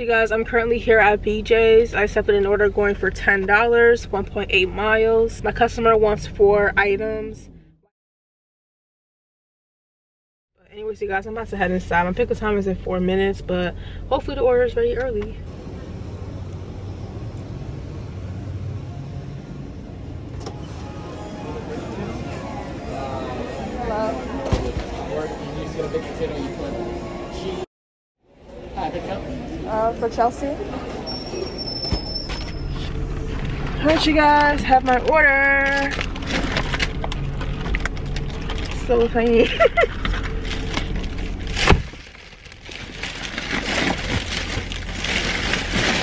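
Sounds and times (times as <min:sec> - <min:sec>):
low outdoor rumble: 0:00.0 - 0:07.9, 0:10.6 - 0:27.6, 0:32.4 - 0:46.0
steady low rumble: 0:32.6 - 0:46.0.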